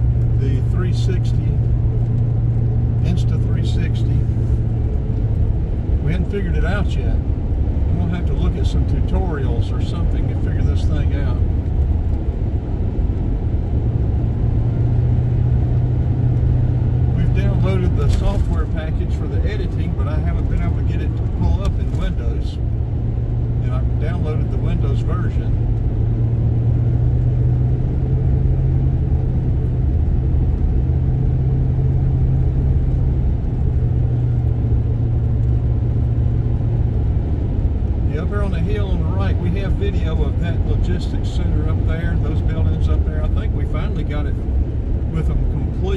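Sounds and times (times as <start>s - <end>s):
car tyres and engine rumble: 0.0s - 45.9s.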